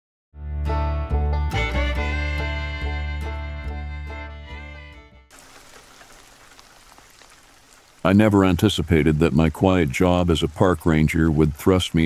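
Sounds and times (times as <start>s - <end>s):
faint steady rain: 5.3s - 12.0s.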